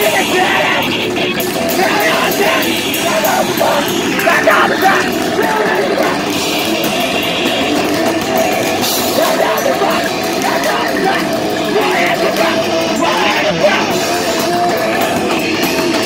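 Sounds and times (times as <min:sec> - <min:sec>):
vocalist shouting into microphone: 0:00.0 - 0:01.1, 0:01.7 - 0:06.4, 0:09.2 - 0:15.0
distorted electric guitar: 0:00.0 - 0:16.0
drums: 0:00.0 - 0:16.0.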